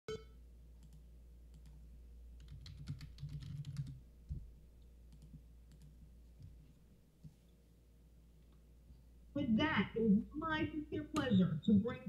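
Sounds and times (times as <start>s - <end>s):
low steady hum: 0.1s - 12.0s
typing on computer keyboard: 2.4s - 4.0s, 5.1s - 5.9s.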